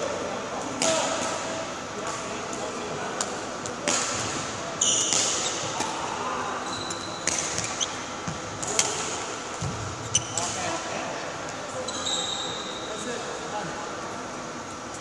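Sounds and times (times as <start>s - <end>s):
shoes squeaking on court floor: 4.8s - 6.0s, 6.6s - 9.0s, 9.6s - 10.7s, 11.8s - 13.2s
shuttlecock struck by rackets: 7.2s - 7.8s.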